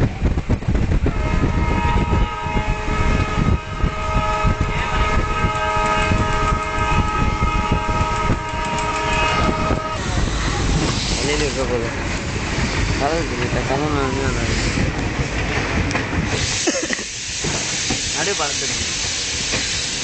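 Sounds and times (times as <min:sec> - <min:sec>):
steady high tone from train: 0:00.0 - 0:20.0
train wheels rumbling on rails: 0:00.0 - 0:20.0
knocks of train wheels: 0:05.3 - 0:20.0.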